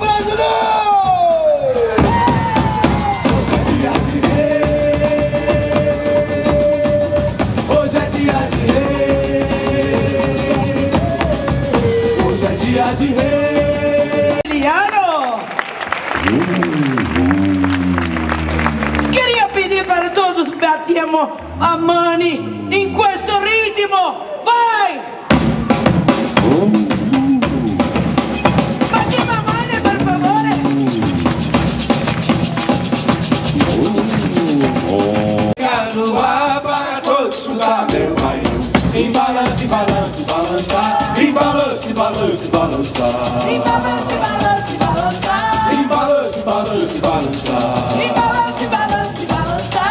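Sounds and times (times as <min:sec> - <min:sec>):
fast shaker rhythm: 0:00.0 - 0:14.7, 0:26.0 - 0:49.9
percussion band playing: 0:00.0 - 0:24.0, 0:25.1 - 0:49.9
bass drum beating: 0:01.9 - 0:14.4, 0:16.2 - 0:20.1, 0:25.3 - 0:35.6
group singing: 0:02.5 - 0:14.5, 0:33.6 - 0:49.9
upbeat folk dance music: 0:25.3 - 0:49.9.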